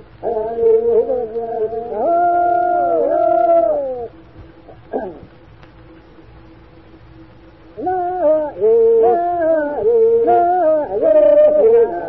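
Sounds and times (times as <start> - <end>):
men singing long held notes: 7.8 - 12.0.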